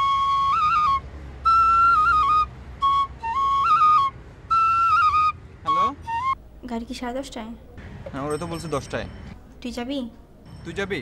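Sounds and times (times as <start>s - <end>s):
bamboo flute melody: 0.0s - 6.4s.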